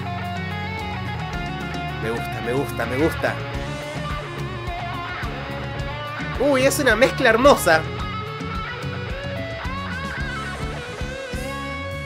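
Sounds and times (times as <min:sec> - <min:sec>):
bass: 0:00.0 - 0:12.0
strummed guitar: 0:00.0 - 0:12.0.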